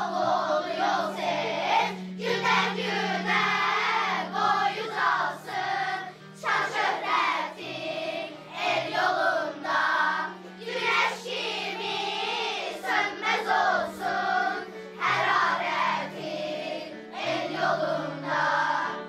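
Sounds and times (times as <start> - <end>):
children singing together: 0.0 - 19.0.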